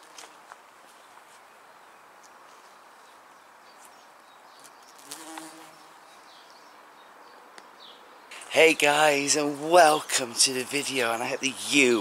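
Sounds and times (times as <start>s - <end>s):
bees buzzing: 5.0s - 5.8s.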